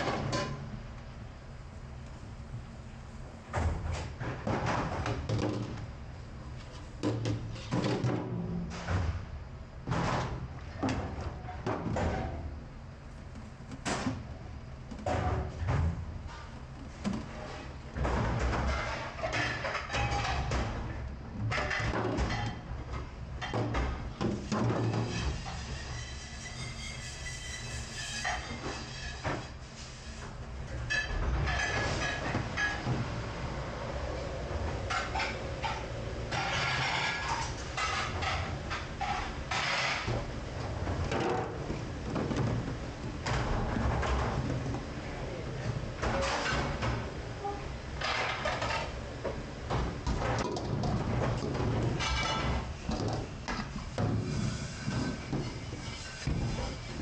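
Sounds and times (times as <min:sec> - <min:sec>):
metal pans clattering and scraping: 0:17.1 - 0:20.8, 0:21.5 - 0:22.6, 0:30.8 - 0:33.0, 0:34.9 - 0:42.6, 0:46.0 - 0:47.0, 0:48.0 - 0:49.0, 0:49.7 - 0:57.0.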